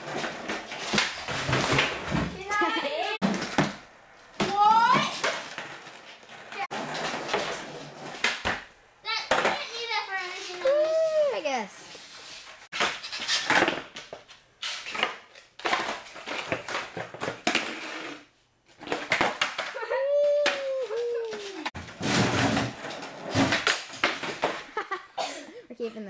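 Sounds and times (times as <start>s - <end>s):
skateboard wheels rolling on concrete: 0.0s - 25.0s
high whining cry: 19.8s - 21.7s.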